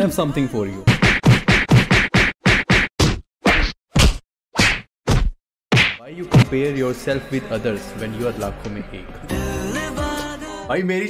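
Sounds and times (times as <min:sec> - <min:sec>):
sharp whack sound effects: 0:00.9 - 0:06.6.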